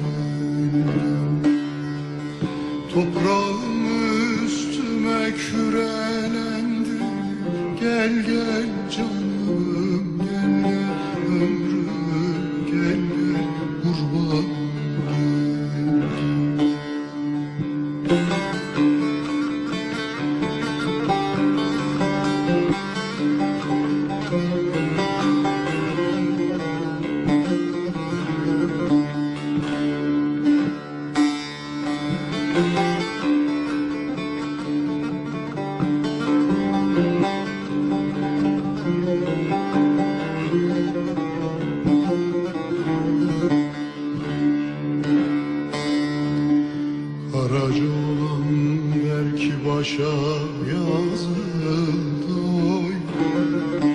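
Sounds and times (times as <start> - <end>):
plucked zither running phrases: 0.0 - 49.8.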